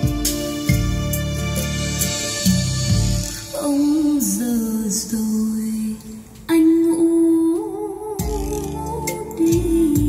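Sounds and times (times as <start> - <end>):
bass notes: 0.0 - 3.4
bolero song over speakers: 0.0 - 5.5, 8.2 - 10.0.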